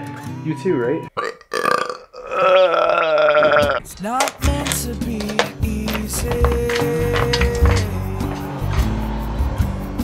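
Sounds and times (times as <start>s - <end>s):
person's wavering vocal noise: 1.3s - 3.8s.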